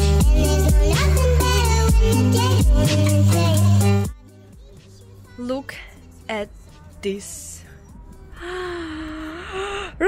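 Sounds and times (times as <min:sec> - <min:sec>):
woman's breathy ooh: 0:08.3 - 0:10.0.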